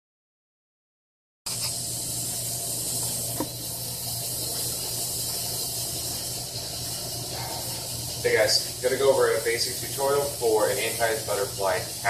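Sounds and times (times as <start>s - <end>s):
steady hiss: 1.5s - 12.0s.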